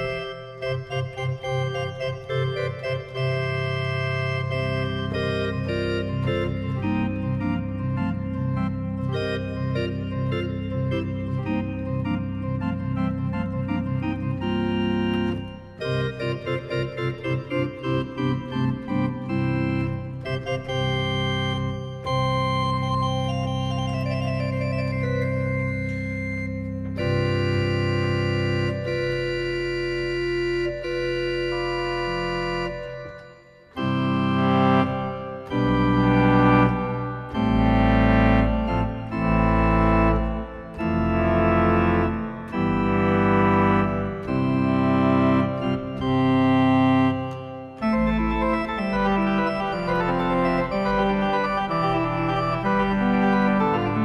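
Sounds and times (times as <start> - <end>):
pipe organ chords: 0.0 - 54.0.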